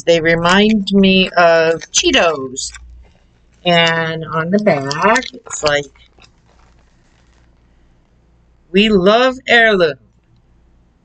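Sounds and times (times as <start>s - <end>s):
low steady hum: 0.0s - 11.0s
foil bag crinkling: 4.6s - 7.7s.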